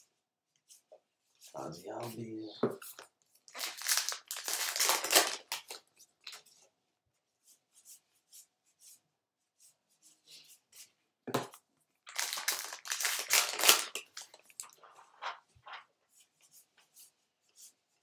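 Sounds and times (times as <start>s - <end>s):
wrapper tearing and crinkling: 3.5s - 5.8s, 12.1s - 15.8s.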